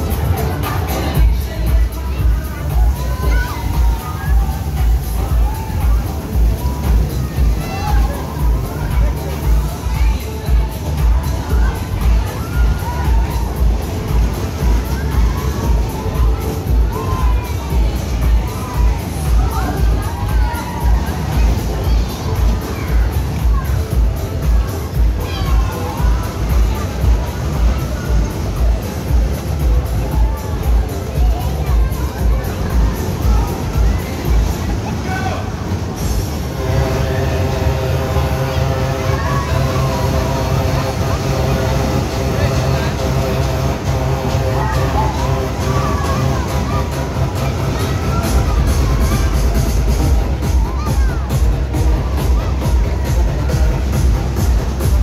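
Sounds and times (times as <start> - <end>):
fairground music with heavy bass: 0.0 - 55.0
riders shouting and screaming: 0.0 - 55.0
steady low drone: 0.0 - 55.0.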